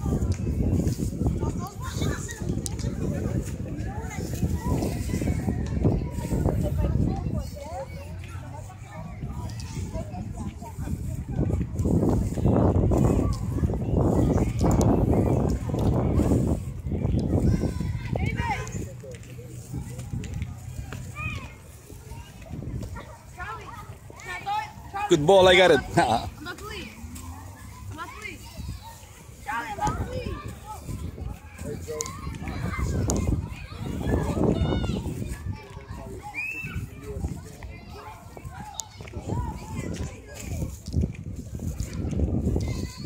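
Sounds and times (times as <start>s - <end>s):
children playing and calling out: 0.0s - 43.0s.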